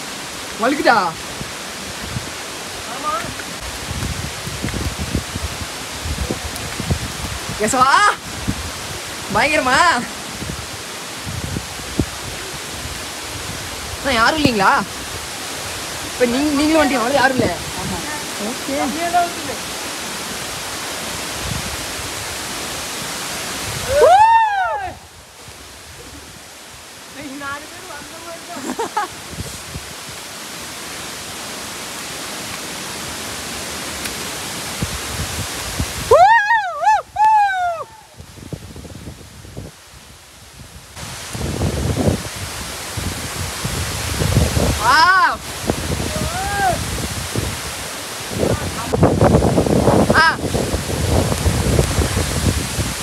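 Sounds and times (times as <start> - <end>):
waterfall roaring: 0.0 - 53.0
wind buffeting microphone: 0.6 - 28.2, 28.8 - 30.8, 34.2 - 53.0
person whooping: 23.8 - 25.1, 36.1 - 38.2, 46.1 - 46.8.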